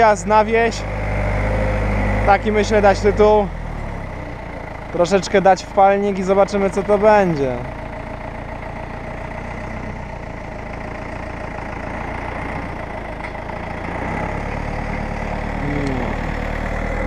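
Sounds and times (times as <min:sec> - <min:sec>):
tractor diesel engine idling: 0:00.0 - 0:17.0.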